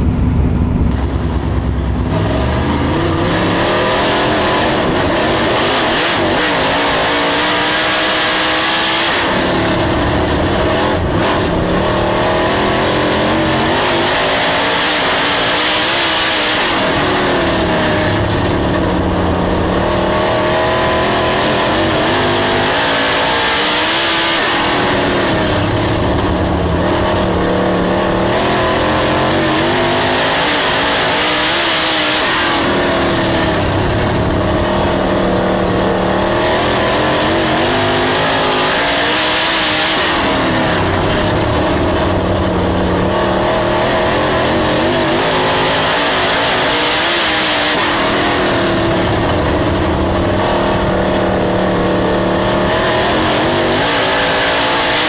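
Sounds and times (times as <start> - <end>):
race car engine revving: 0.0 - 55.0.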